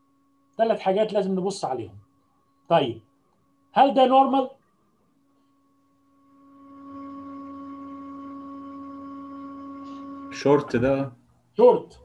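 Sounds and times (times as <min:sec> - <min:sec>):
steady pure tone: 0:00.0 - 0:12.0.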